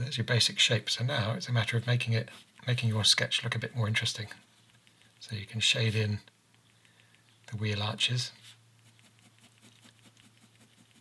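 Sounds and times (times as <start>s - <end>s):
ballpoint pen scratching on paper: 8.8s - 11.0s.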